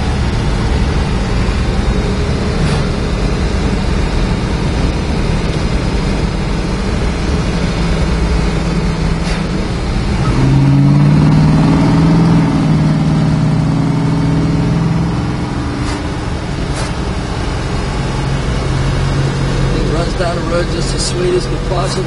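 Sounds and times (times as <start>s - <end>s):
car engine from inside cabin: 0.0s - 22.0s.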